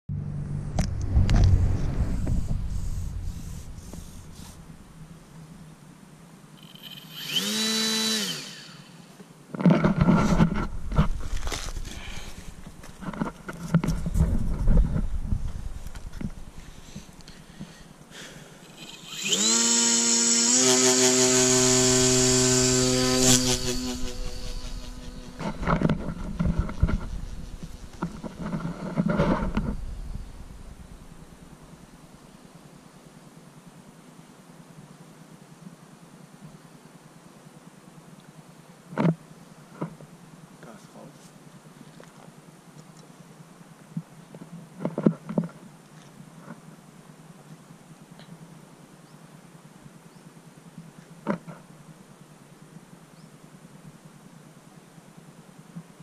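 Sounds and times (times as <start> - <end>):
electric motor and propeller whine: 0.1 - 5.2, 6.6 - 9.1, 18.6 - 31.7
low rumbling microphone noise: 0.1 - 5.9, 9.9 - 17.8, 23.4 - 32.1.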